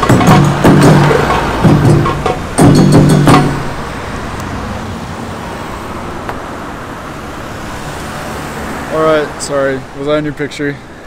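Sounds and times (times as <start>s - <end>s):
music percussion hits: 0.0s - 4.6s
road traffic passing cars: 0.0s - 11.0s.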